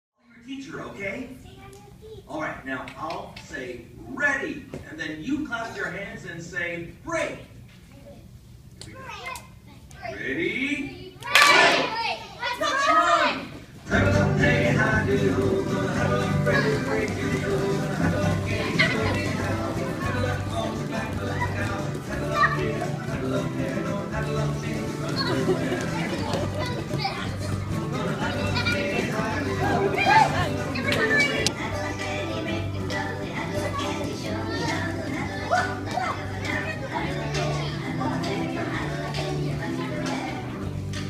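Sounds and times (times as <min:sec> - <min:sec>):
children chattering: 0:10.9 - 0:13.6, 0:15.6 - 0:40.8
background music: 0:13.9 - 0:41.0.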